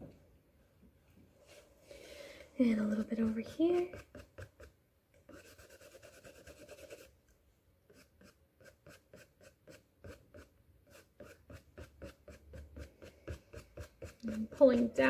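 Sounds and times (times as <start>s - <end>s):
paintbrush strokes on canvas: 5.3s - 7.1s, 7.9s - 15.0s.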